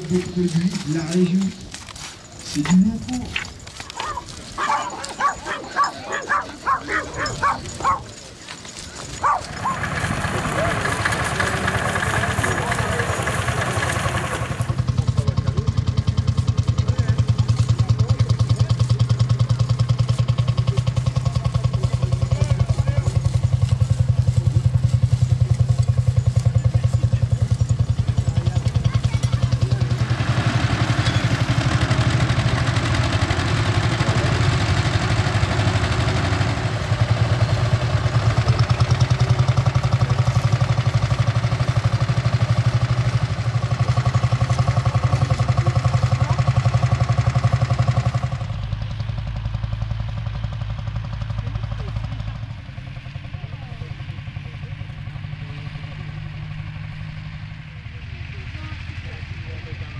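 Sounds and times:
tractor engines running under load: 0.0s - 59.9s.

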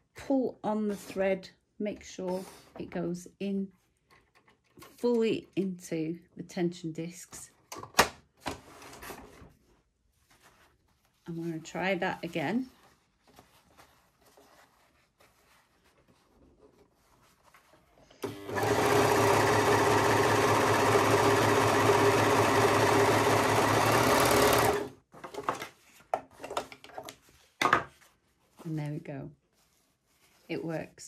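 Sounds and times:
fabric rustling: 9.2s - 18.1s, 27.2s - 31.0s
overlocker sewing machine running: 18.2s - 24.9s.

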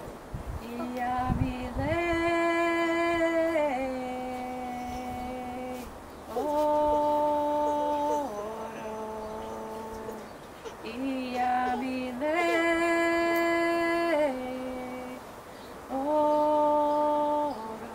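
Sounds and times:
woman singing unaccompanied: 0.6s - 17.9s.

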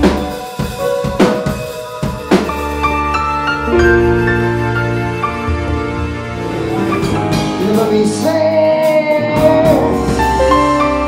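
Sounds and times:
band sustained chords: 1.6s - 8.1s.

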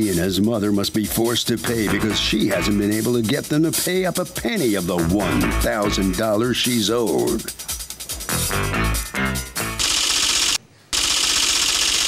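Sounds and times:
bright rapid rattle: 9.8s - 12.0s.

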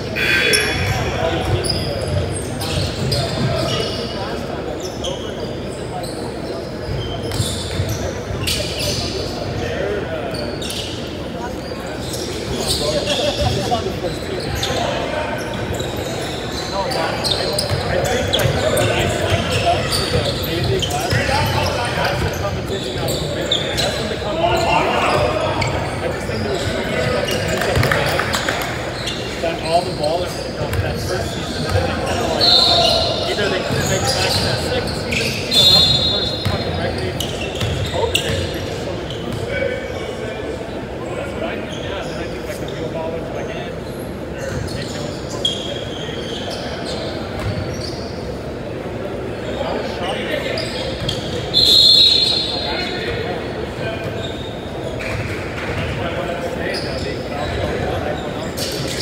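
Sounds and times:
players calling out: 0.0s - 4.1s
referee's whistle blasts: 0.1s - 1.2s, 35.5s - 36.4s, 51.5s - 52.7s.

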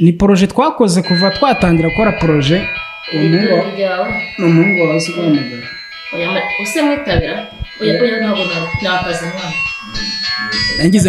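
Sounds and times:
person speaking: 0.4s - 11.0s
background music with keyboard tones: 1.0s - 11.0s.

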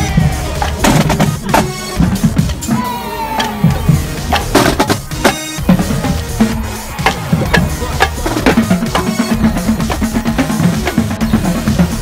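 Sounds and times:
bass drums: 0.0s - 12.0s
snare drums: 0.0s - 12.0s.

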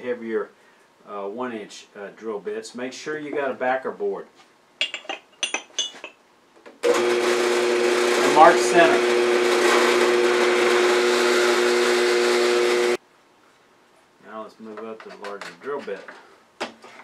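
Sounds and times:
drill press boring into wood: 6.8s - 13.0s.

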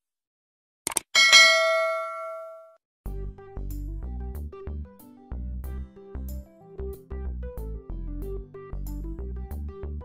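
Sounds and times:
bell ding: 1.2s - 2.7s.

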